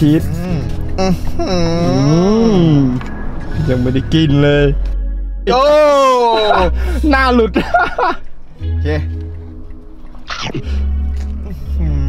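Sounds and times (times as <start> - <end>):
person humming: 0.2 - 3.0, 11.4 - 12.0.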